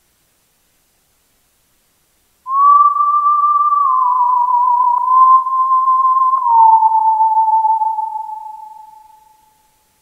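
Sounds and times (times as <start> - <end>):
whistle-like synth tone: 2.5 - 9.6.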